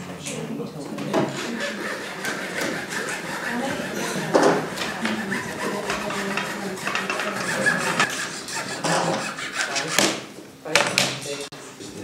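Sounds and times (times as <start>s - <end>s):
indistinct voices: 0.0s - 12.0s
rubbing and scraping handling noises: 1.2s - 10.3s.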